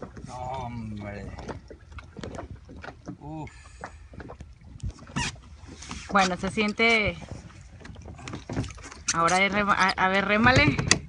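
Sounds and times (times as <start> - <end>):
wind rumble on microphone: 4.2 - 11.0
low thump on kayak: 10.2 - 11.0.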